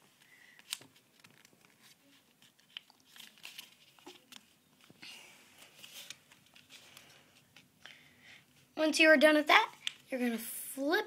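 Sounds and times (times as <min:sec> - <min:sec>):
paper rustling and crinkling: 0:00.0 - 0:07.7
soft clicks of paper pressed flat: 0:00.2 - 0:05.0.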